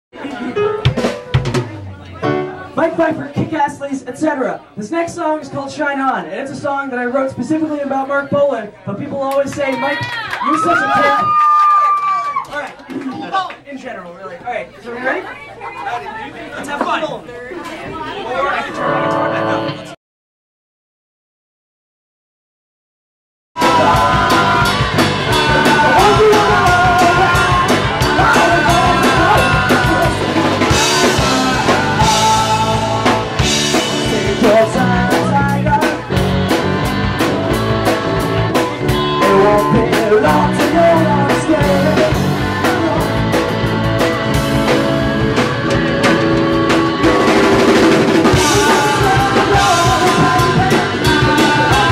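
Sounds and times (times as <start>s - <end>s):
keyboard: 0.2s - 3.9s, 18.5s - 20.0s, 23.6s - 51.9s
people chattering: 0.2s - 11.4s, 12.2s - 20.0s, 23.6s - 51.9s
drum kit beat: 0.5s - 3.6s, 23.6s - 51.9s
bass guitar: 18.8s - 19.9s, 23.6s - 51.9s
electric guitar: 23.6s - 51.9s.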